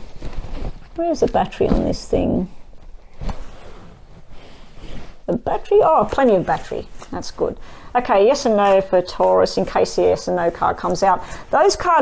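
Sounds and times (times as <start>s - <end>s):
faint rubbing and rustling: 0.0s - 12.0s.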